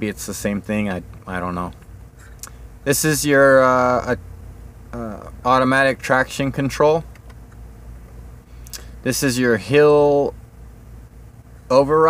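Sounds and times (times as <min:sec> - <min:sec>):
truck cab hum: 0:00.0 - 0:12.0.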